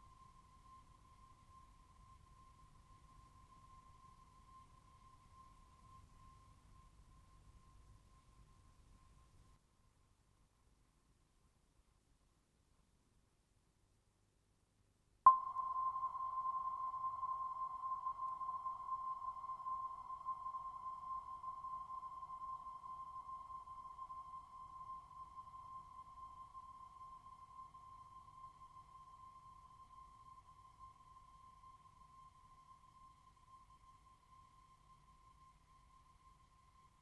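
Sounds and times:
single pure ringing tone: 15.3s - 36.0s.

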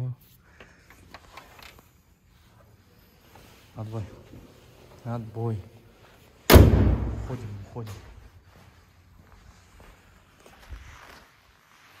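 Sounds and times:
faint footsteps: 0.5s - 12.0s.

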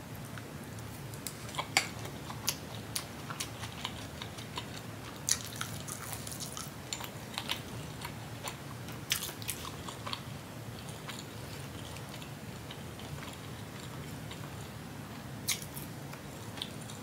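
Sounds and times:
mouth chewing food: 1.2s - 17.0s.

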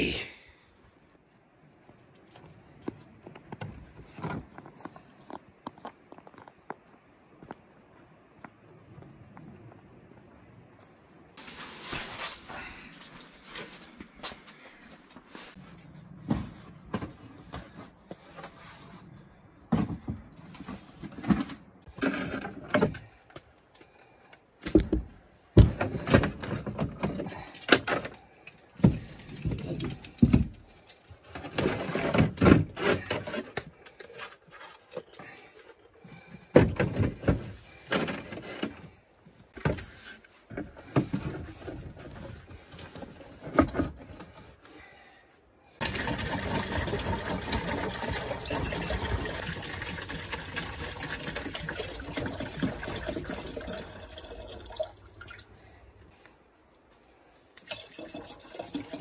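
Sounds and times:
tent fabric rustling: 11.4s - 15.8s.

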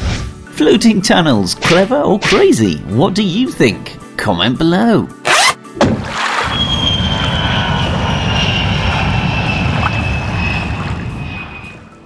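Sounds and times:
airplane engine passing: 6.2s - 12.0s.

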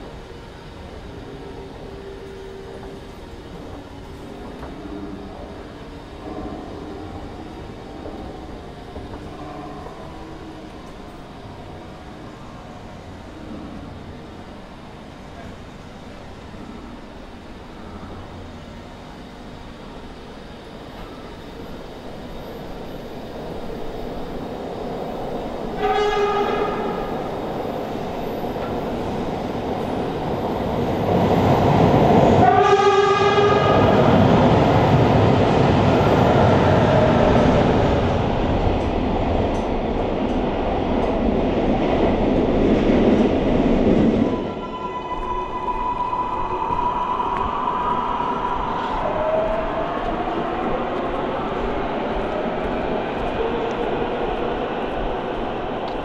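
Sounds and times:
train passing: 0.0s - 56.0s
train horn blasts: 6.2s - 7.4s, 25.7s - 27.3s, 32.3s - 34.2s, 44.3s - 45.8s.

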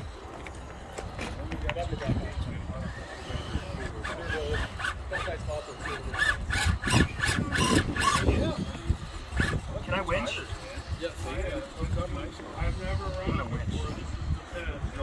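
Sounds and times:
people talking: 0.0s - 15.0s
toy car clicking on rocks: 3.0s - 9.7s.

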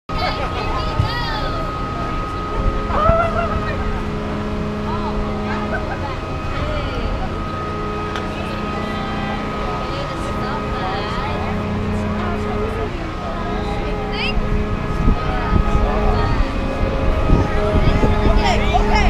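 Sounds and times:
amusement ride machine hum: 0.1s - 19.0s
low drone: 0.1s - 19.0s.

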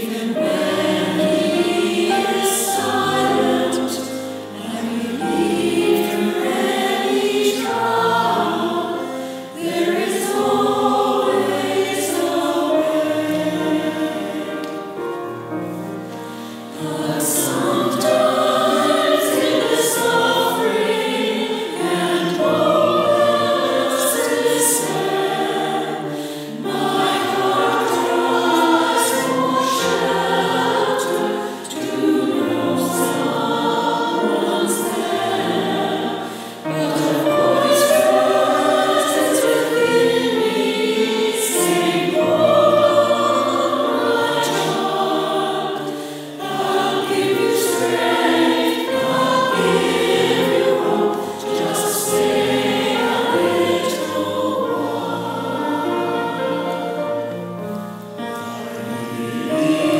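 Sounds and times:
mixed choir singing: 0.0s - 59.9s
singers breathing: 9.1s - 9.6s, 16.2s - 16.8s, 26.1s - 26.6s, 36.2s - 36.7s, 45.8s - 46.4s.

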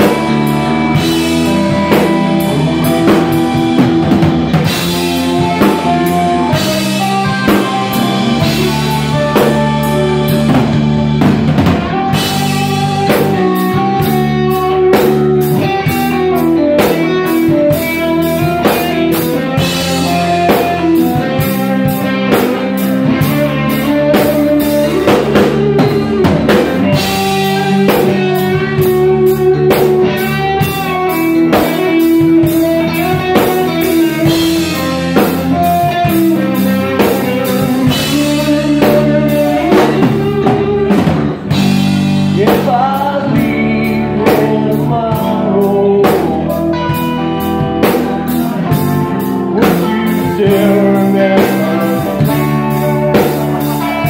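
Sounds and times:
bass guitar: 0.0s - 54.0s
drum kit beat: 0.0s - 54.0s
electric guitar: 0.0s - 54.0s.

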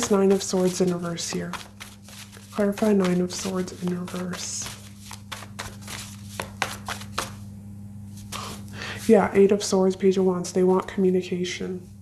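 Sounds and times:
cards being shuffled: 0.0s - 7.4s.

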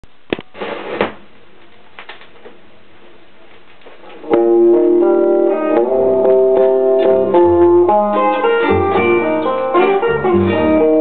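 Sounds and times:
vinyl clicks and crackle: 0.0s - 2.6s, 3.4s - 4.4s
blues guitar chords: 4.2s - 11.0s.

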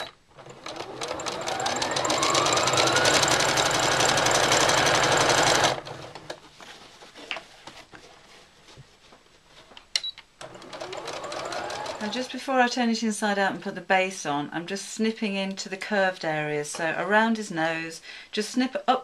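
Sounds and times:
sewing machine stitching: 0.0s - 6.4s, 10.4s - 12.2s.

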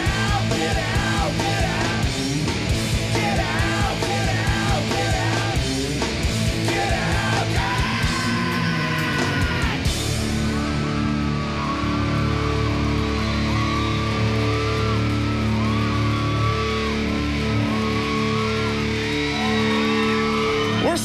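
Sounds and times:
rock band playing live: 0.0s - 21.0s.

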